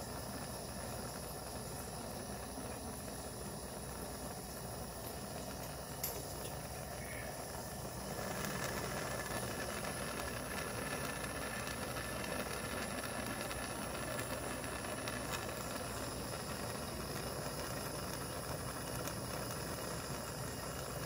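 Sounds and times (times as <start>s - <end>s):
gas torch hissing: 0.0s - 21.0s.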